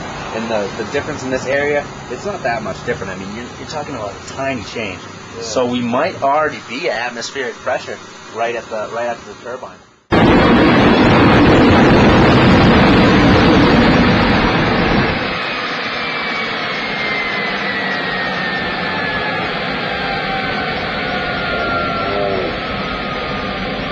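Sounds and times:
faint whine falling in pitch: 0.0s - 23.9s
jet engine roaring: 0.0s - 23.9s.

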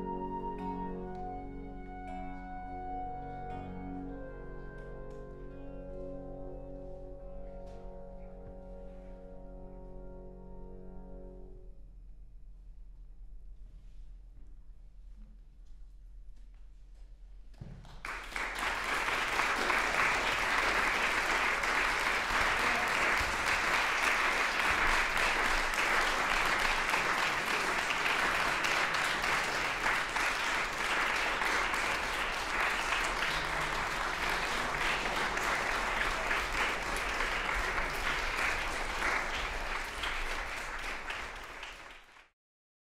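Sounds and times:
audience applauding: 17.8s - 42.3s.

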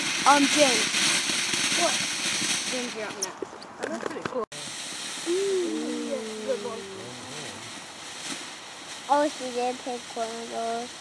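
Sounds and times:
firework fountain hissing: 0.0s - 11.0s
person calling out: 5.3s - 7.6s.

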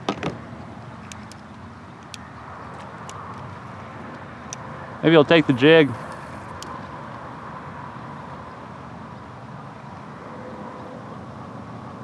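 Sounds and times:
faint outdoor background noise: 0.0s - 12.0s
light sharp ticks: 1.0s - 3.5s, 4.1s - 4.7s, 6.1s - 6.8s.

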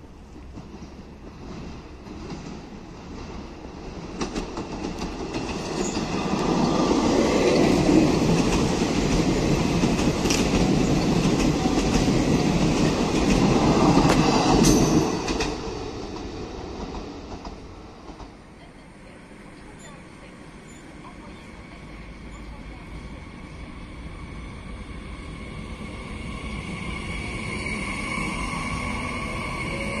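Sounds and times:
train wheels rumbling on rail: 0.0s - 30.0s.

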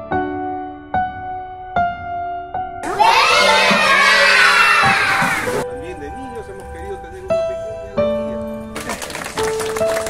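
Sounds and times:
children shouting and cheering: 2.8s - 5.6s.

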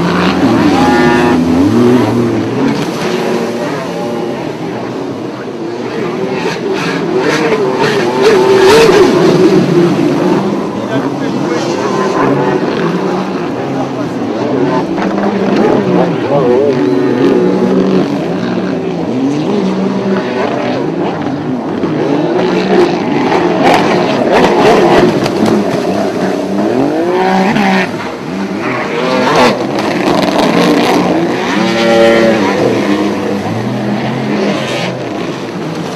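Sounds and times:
jet ski engines revving: 0.0s - 35.9s.

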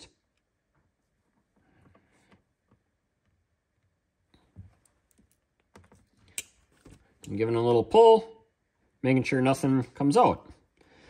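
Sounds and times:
wires being handled: 0.3s - 7.4s.

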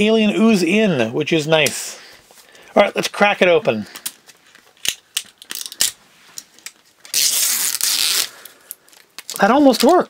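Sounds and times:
packaging tearing rip: 7.1s - 10.0s.

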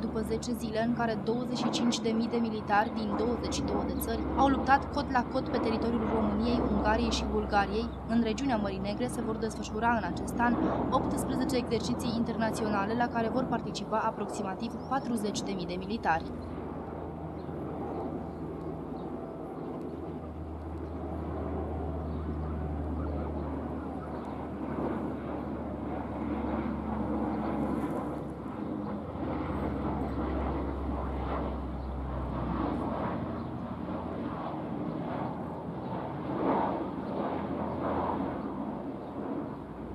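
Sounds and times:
distant propeller engines droning: 0.0s - 39.9s.

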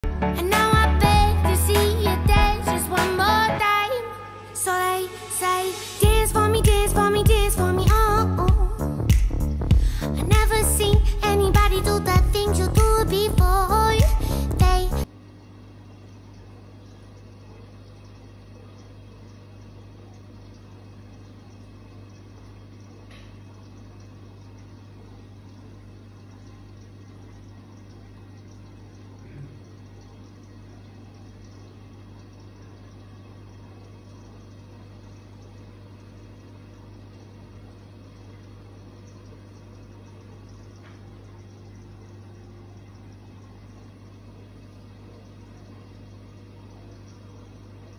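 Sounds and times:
aquarium filter bubbling: 0.0s - 47.9s
air pump hum: 5.1s - 15.2s.

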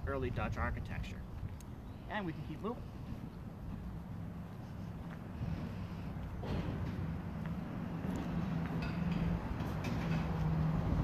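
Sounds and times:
vehicle engine hum: 1.1s - 11.0s
faint footsteps: 1.3s - 10.6s.

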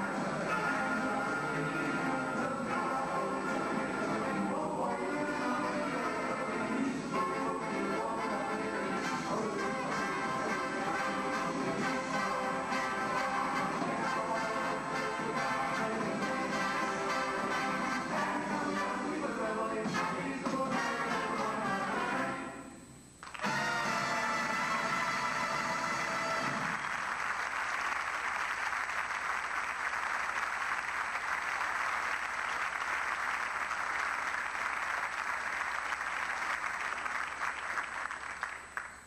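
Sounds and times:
military band playing: 7.6s - 19.0s, 23.4s - 26.8s
audience applause: 26.2s - 39.0s.

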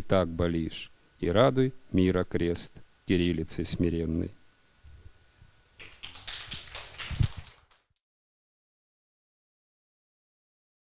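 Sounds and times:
scattered hand claps: 5.8s - 8.0s.

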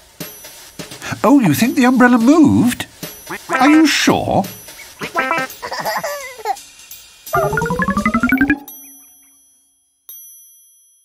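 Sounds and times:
musical note: 7.4s - 9.1s.

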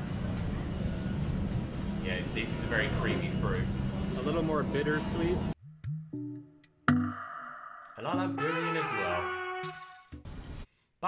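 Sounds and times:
low rumble of street traffic: 0.0s - 5.6s.

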